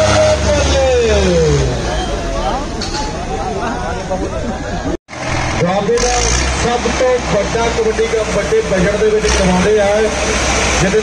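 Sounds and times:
crowd shouting: 0:00.0 - 0:04.1
tractor engines labouring: 0:00.0 - 0:11.0.

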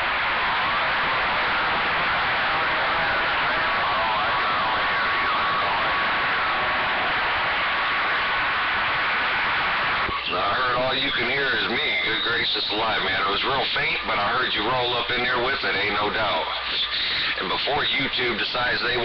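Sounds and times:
radio static hiss: 0:00.0 - 0:19.0
garbled radio voices: 0:10.0 - 0:19.0
clear voice from radio speaker: 0:10.1 - 0:19.0.

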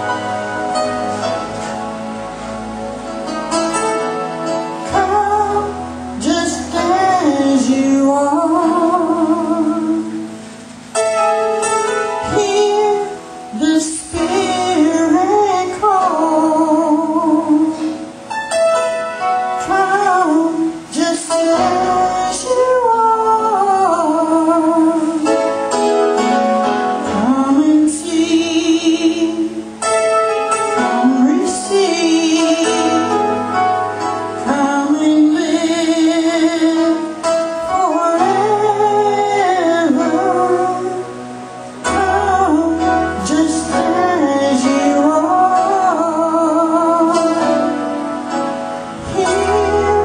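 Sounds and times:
instrumental accompaniment: 0:00.0 - 0:50.0
woman singing into a microphone: 0:04.8 - 0:10.6, 0:12.1 - 0:18.1, 0:19.6 - 0:25.6, 0:27.0 - 0:29.8, 0:30.8 - 0:48.0, 0:49.0 - 0:50.0.

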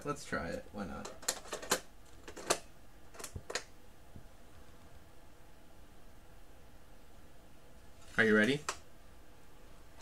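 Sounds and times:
quiet handling: 0:00.0 - 0:05.2.

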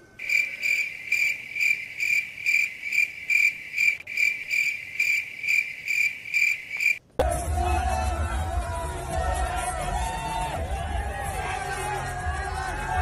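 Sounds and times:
crickets chirping: 0:00.2 - 0:07.0.

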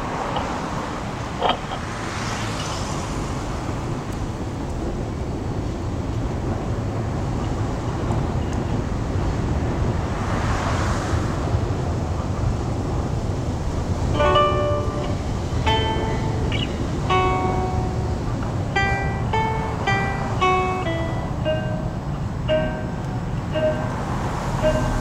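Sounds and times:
road traffic rumble: 0:00.0 - 0:25.0
vehicles passing: 0:00.0 - 0:25.0.

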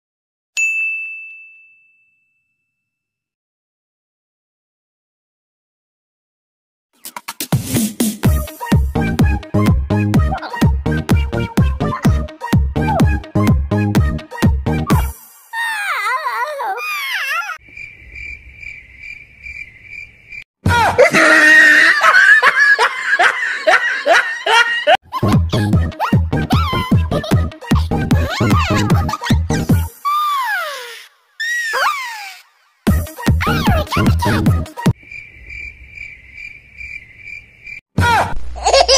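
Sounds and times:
high bright ding: 0:00.6 - 0:02.9
dance music beat: 0:07.0 - 0:15.2, 0:25.2 - 0:29.9, 0:32.9 - 0:34.9
crickets chirping: 0:17.6 - 0:20.5, 0:35.0 - 0:37.8
burst of cackling laughter: 0:20.8 - 0:25.0, 0:38.0 - 0:38.9.

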